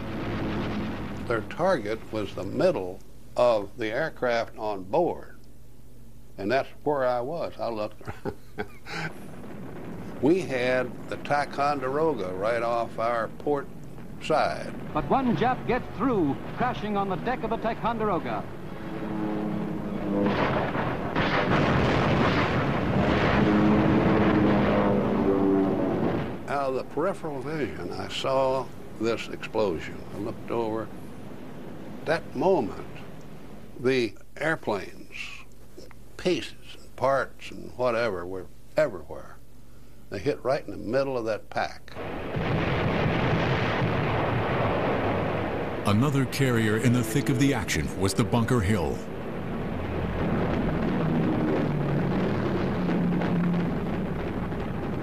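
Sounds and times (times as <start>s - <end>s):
aircraft engine droning: 0.0s - 2.6s, 9.0s - 33.8s, 45.8s - 54.4s
anti-aircraft gunfire: 0.0s - 2.7s, 9.0s - 33.2s, 42.0s - 55.0s
explosions: 0.0s - 2.8s, 8.8s - 33.7s, 42.0s - 55.0s
battle roar with low rumble: 45.8s - 49.1s.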